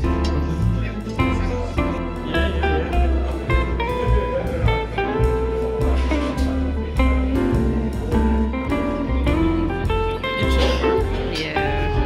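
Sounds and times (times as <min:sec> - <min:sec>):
bass line: 0:00.0 - 0:12.0
plucked melody: 0:00.0 - 0:12.0.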